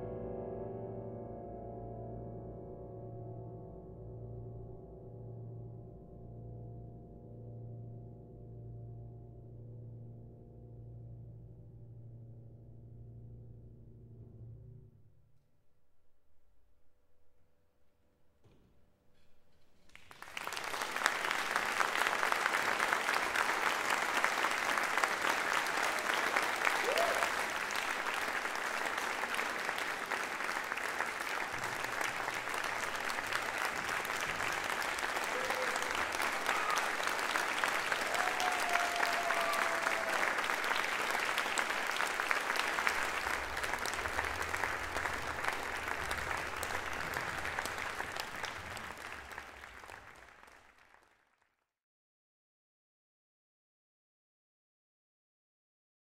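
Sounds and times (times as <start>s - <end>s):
audience applauding: 19.9s - 51.5s.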